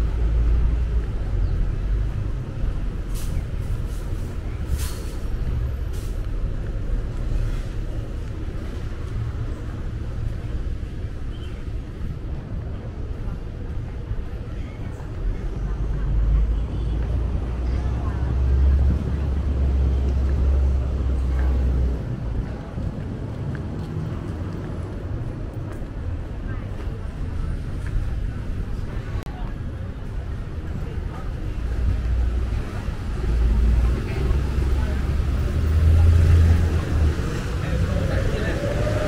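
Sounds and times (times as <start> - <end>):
vehicle engine rumble: 0.0 - 39.0
people talking: 12.3 - 39.0.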